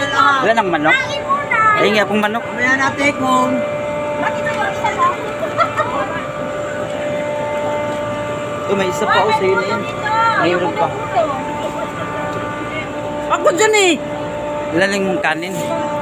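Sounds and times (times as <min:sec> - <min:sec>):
industrial machinery humming: 0:00.0 - 0:16.0
voices talking: 0:00.0 - 0:16.0.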